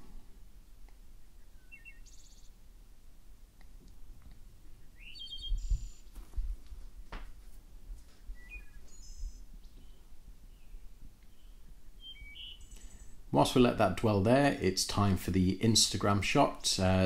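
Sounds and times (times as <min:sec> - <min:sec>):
birds chirping faintly: 0:00.0 - 0:17.0.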